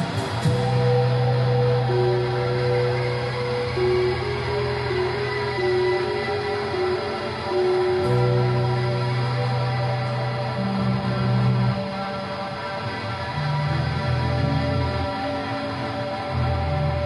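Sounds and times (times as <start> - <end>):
held low drone: 0.0 - 17.0
long sustained notes: 0.0 - 17.0.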